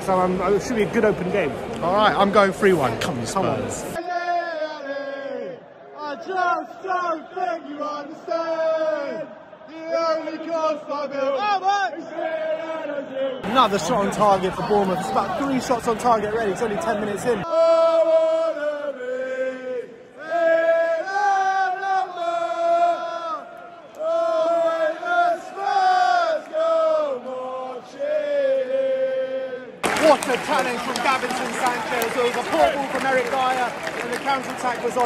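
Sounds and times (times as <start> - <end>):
crowd singing a chant: 3.9 - 30.0
crowd hubbub: 13.4 - 17.5.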